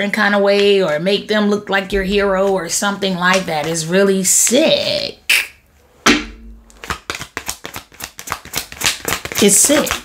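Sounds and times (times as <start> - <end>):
sharp knock: 5.3 - 6.8
cards being shuffled: 6.7 - 10.0.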